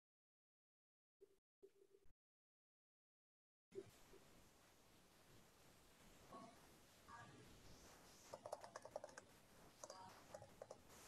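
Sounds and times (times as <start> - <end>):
typing on computer keyboard: 8.3 - 10.9.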